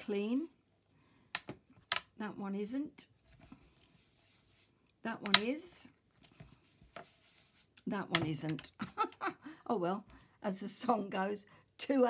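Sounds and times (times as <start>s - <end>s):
brush scuffing on card: 3.2s - 4.8s, 6.2s - 7.8s.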